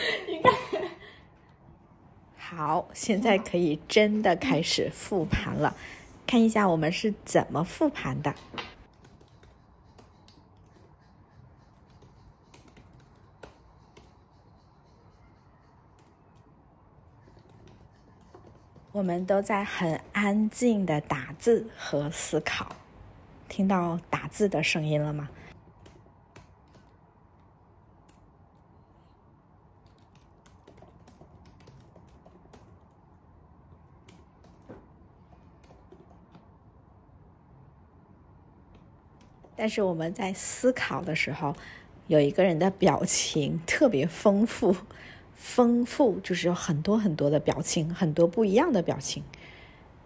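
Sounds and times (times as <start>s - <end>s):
laptop keyboard typing: 7.7s - 19.8s, 25.5s - 28.8s, 29.5s - 36.9s, 38.6s - 39.6s.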